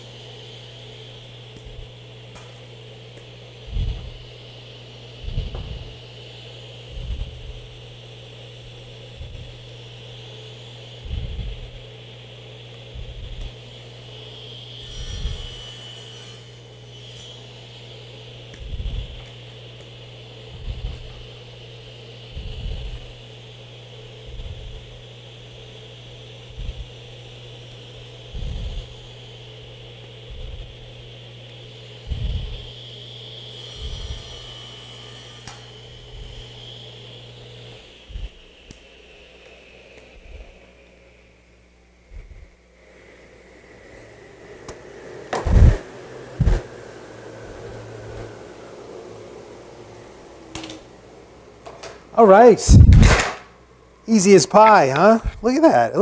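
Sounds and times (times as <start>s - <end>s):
table saw whine: 0.0s - 56.0s.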